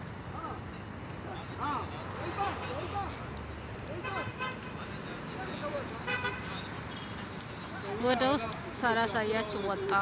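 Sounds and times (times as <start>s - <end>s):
low hum of vehicles: 0.0s - 10.0s.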